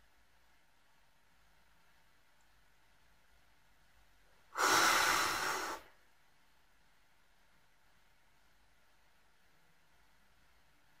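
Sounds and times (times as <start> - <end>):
loud breath into microphone: 4.5 - 6.0.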